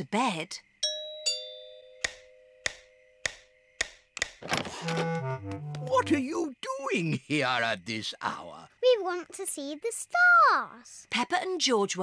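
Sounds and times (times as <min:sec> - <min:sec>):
door opening clatter: 0:04.4 - 0:05.3
music: 0:04.7 - 0:06.3.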